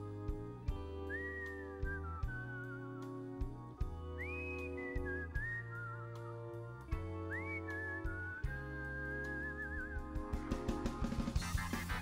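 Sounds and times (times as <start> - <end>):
man whistling a melody: 0.0 - 11.2
sustained low band chords: 0.0 - 12.0.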